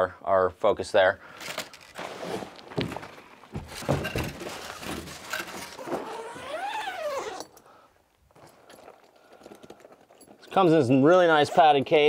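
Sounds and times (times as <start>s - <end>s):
bag rustling and scraping in cardboard: 1.5s - 7.5s.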